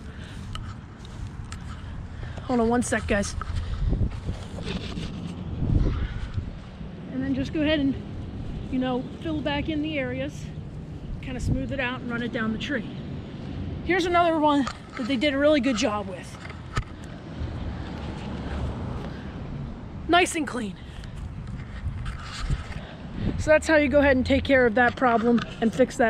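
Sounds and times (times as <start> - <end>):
footsteps on grass: 0.0 - 7.0
low outdoor rumble: 0.0 - 26.0
wind buffeting microphone: 0.0 - 26.0.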